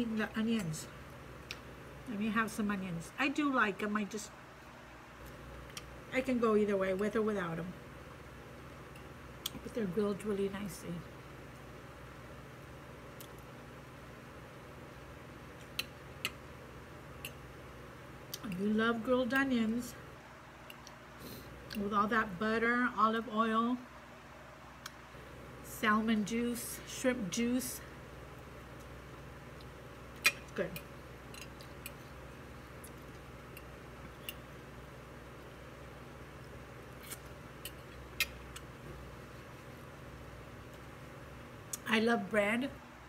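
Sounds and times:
soft eating click: 18.3s - 19.6s, 20.6s - 21.0s, 28.7s - 35.6s
person chewing food: 31.2s - 34.6s.

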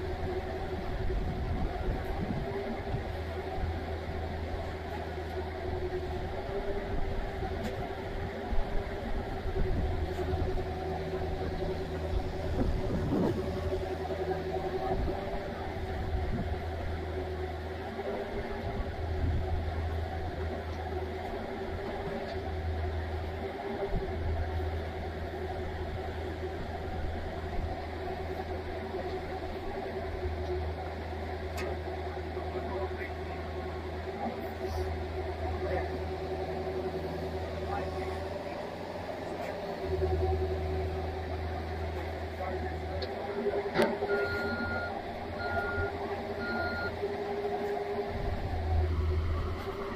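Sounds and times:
excavator engine humming with whine: 0.0s - 49.9s
faint voices: 28.3s - 49.9s.

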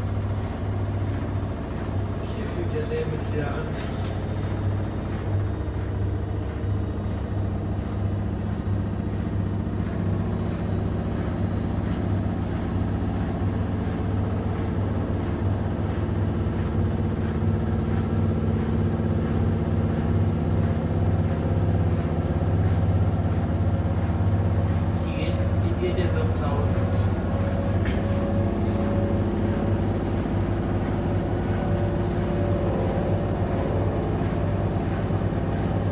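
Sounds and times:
low motor hum: 0.0s - 35.9s
washing machine drum turning: 0.0s - 35.9s.

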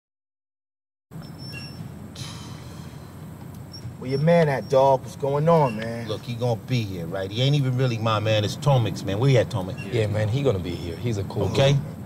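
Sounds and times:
low outdoor rumble: 1.2s - 12.0s
brief hiss: 2.2s - 3.2s.

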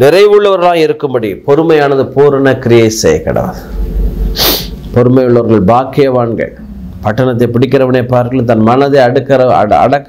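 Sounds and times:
man speaking: 0.0s - 3.8s, 4.9s - 10.0s
sharp hissing breath: 4.3s - 4.9s.

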